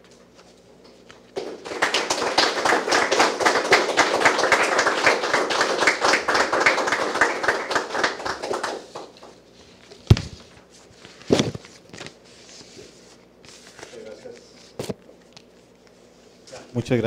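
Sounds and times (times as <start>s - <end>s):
audience applauding: 1.4s - 9.4s.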